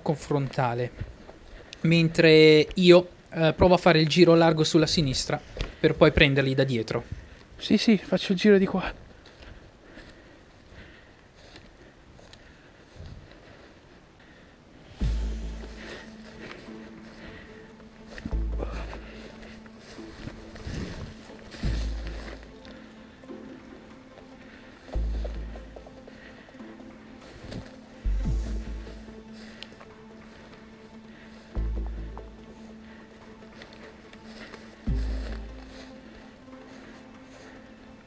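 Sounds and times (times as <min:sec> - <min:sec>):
held music note: 0:14.9 - 0:37.9
deep bass hits: 0:15.0 - 0:15.8.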